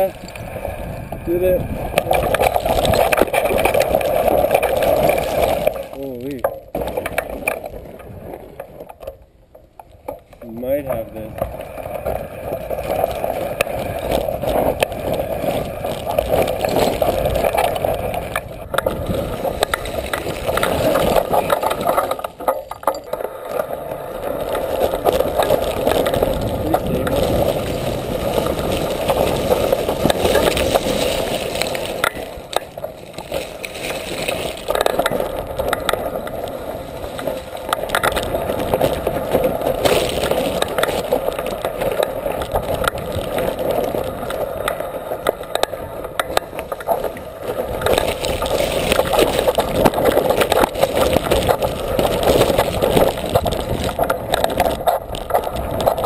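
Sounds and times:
rushing wind noise: 0.0s - 5.9s, 11.0s - 56.0s
bike rattling: 0.0s - 56.0s
tyres crunching over rock: 0.0s - 56.0s.

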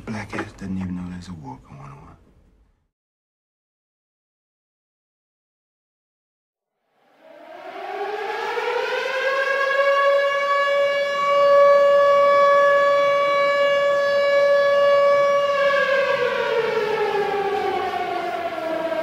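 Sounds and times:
siren: 6.7s - 19.0s.

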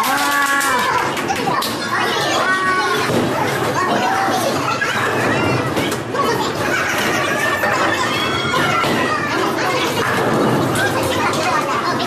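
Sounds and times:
scattered clatter: 0.0s - 12.0s.

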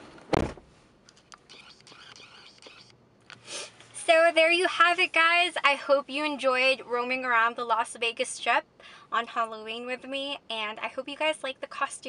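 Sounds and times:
breath drawn in: 3.4s - 3.8s.

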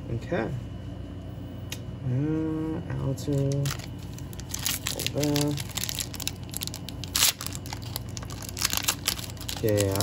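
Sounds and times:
cards clicking and wrapper crinkling: 3.2s - 10.0s.

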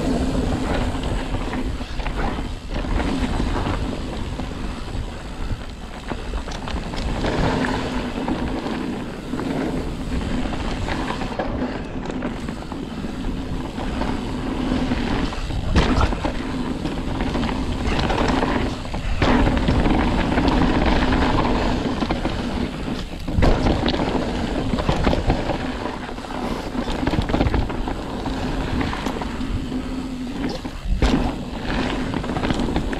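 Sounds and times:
bike rattling and knocking: 0.0s - 32.9s
bike tyres crunching on dirt: 0.0s - 32.9s
wind rumble on microphone: 0.0s - 32.9s.

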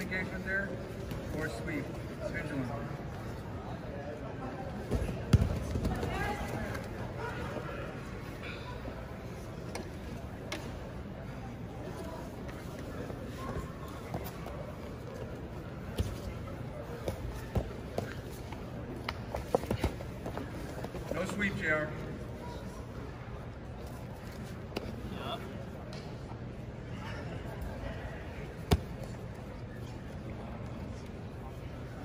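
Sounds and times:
murmur of voices: 0.0s - 32.0s.

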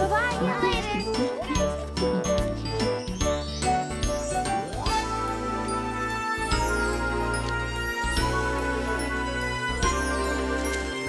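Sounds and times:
bright instrumental music: 0.0s - 11.0s.

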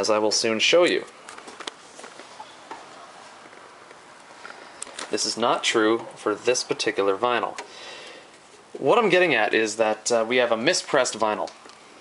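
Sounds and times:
faint hiss: 4.2s - 12.0s.

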